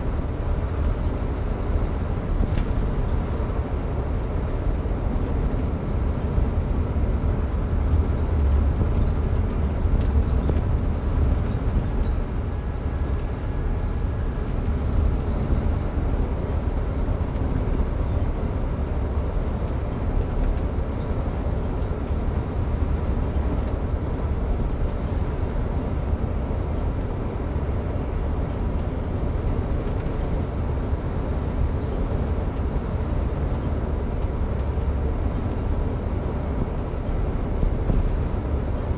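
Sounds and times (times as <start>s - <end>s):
bus engine and tyres rumbling: 0.0s - 38.9s.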